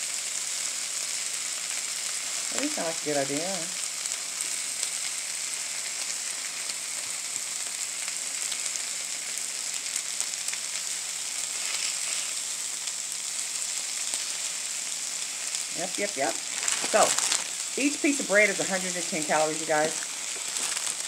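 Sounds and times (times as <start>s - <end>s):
sandwich sizzling on a griddle: 0.0s - 21.0s.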